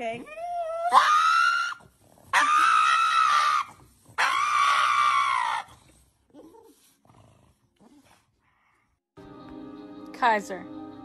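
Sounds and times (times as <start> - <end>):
dog screaming: 0.5 - 5.8.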